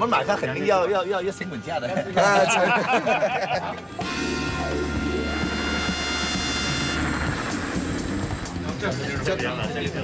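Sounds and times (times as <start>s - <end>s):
jet engine high whine: 4.5s - 8.8s.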